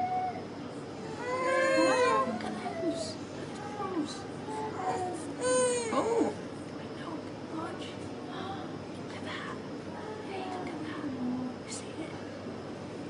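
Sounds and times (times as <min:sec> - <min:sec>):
toddler crying: 0:01.2 - 0:02.6, 0:04.7 - 0:06.3.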